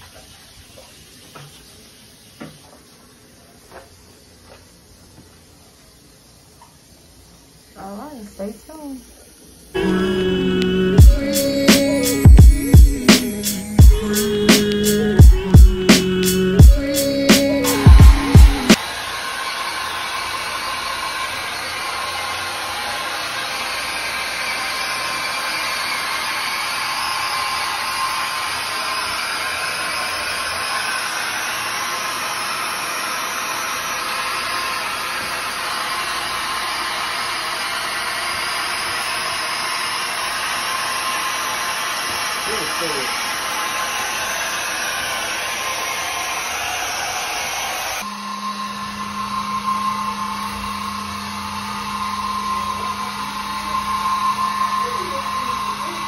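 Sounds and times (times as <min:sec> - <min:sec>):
floor scrubbing machine motor hum: 0:07.8 - 0:56.0.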